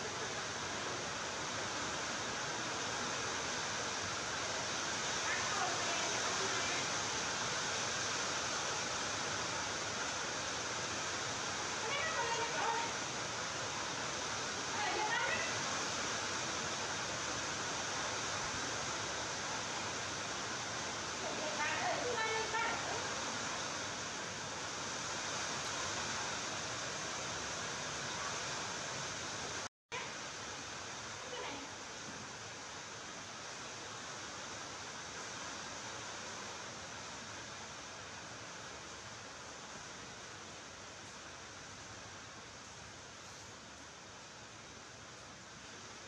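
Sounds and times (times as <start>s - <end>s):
steady background hiss: 0.0s - 46.0s.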